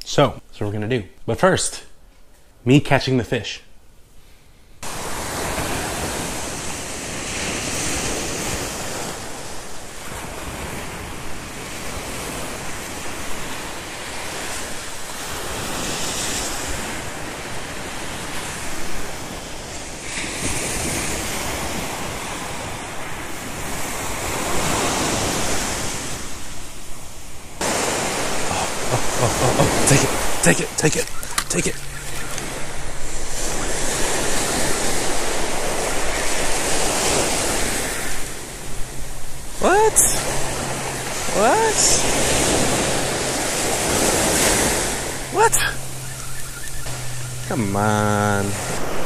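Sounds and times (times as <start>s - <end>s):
waves washing up a beach: 4.8s - 49.0s.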